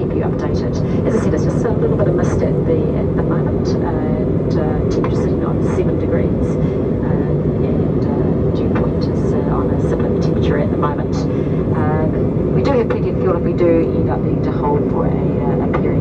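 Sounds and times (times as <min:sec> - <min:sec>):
airplane cabin roar: 0:00.0 - 0:16.0.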